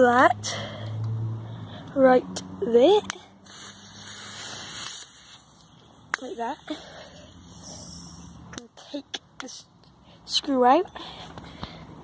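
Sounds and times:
gas hissing from plastic bottle: 0:03.4 - 0:06.7.

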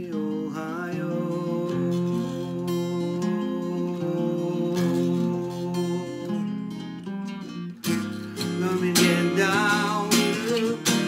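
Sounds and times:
acoustic guitar strummed chords: 0:00.0 - 0:11.0.

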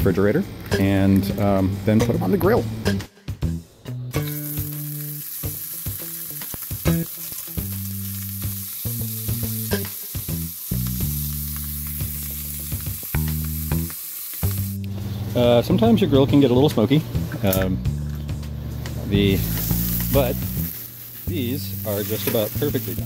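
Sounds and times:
background music: 0:00.0 - 0:23.0
food sizzling in hot oil: 0:04.2 - 0:15.0, 0:19.1 - 0:23.0.

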